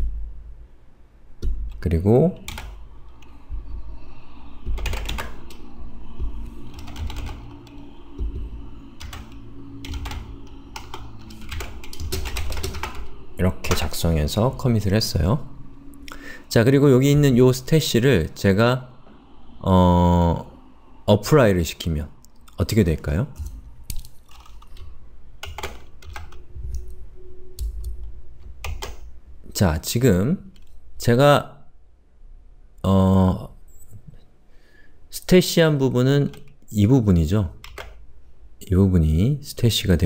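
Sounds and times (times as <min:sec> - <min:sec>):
low room rumble: 0:00.0 - 0:40.0.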